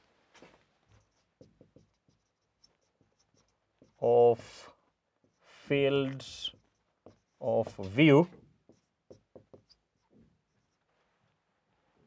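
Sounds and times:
marker pen squeaking on whiteboard: 0:00.8 - 0:04.0, 0:06.5 - 0:08.0, 0:08.6 - 0:11.0.

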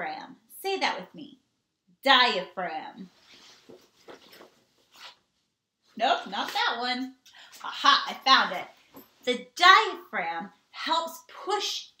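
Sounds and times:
backpack rustling: 0:03.2 - 0:05.2.

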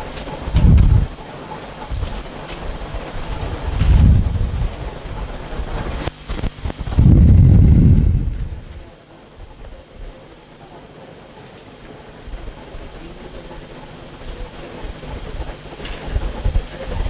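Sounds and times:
faint steady background noise: 0:00.0 - 0:17.0
low muffled rumbling: 0:00.0 - 0:17.0.

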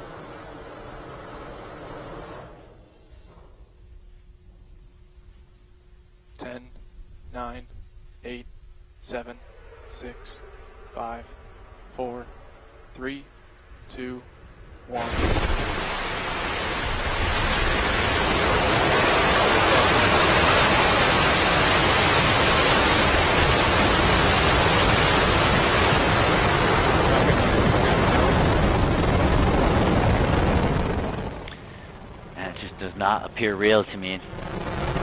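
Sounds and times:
rocket engines roaring: 0:00.0 - 0:35.0.

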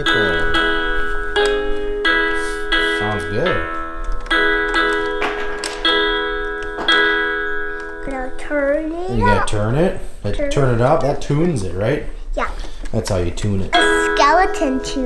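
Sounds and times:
person speaking: 0:00.0 - 0:00.8, 0:02.3 - 0:03.8, 0:08.0 - 0:11.8
toy guitar electronic notes: 0:00.0 - 0:08.4, 0:13.8 - 0:15.0.

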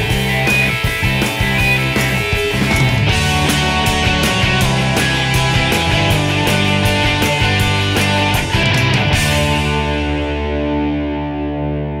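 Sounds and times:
distorted electric guitar chord ringing: 0:00.0 - 0:12.0.

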